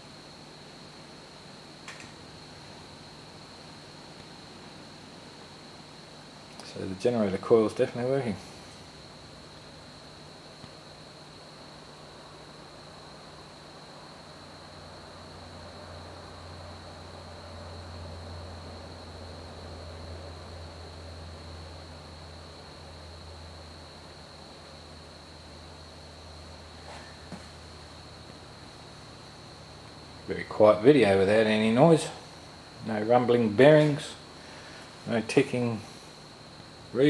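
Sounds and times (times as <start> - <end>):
thin high-pitched whine: 0.0 - 23.6
faint low motor hum: 0.0 - 37.0.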